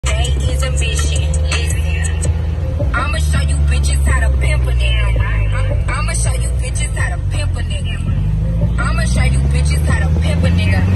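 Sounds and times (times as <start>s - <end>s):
car engine drone: 0.0s - 10.9s
music: 0.0s - 10.9s.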